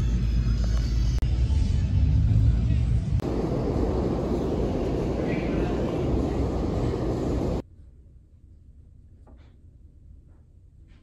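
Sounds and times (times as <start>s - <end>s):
low outdoor rumble: 0.1s - 9.2s
heavy rain pouring: 3.2s - 7.6s.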